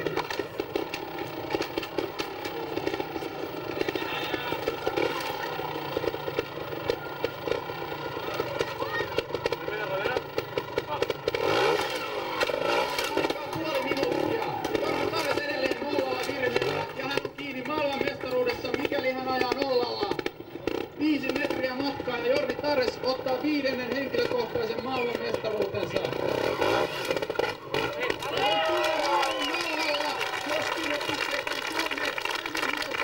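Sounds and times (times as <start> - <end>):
motorcycle engine revving: 0.0 - 33.0
people talking: 3.7 - 5.5, 8.2 - 10.2, 13.1 - 20.2, 21.0 - 26.2, 27.8 - 33.0.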